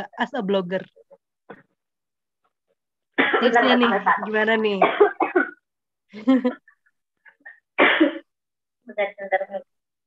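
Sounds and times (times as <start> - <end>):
woman coughing: 3.2 - 3.7, 4.8 - 5.7, 7.8 - 8.4.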